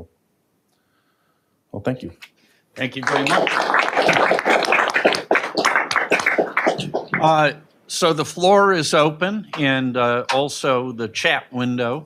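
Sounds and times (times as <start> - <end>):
audience applauding: 2.8 - 7.6.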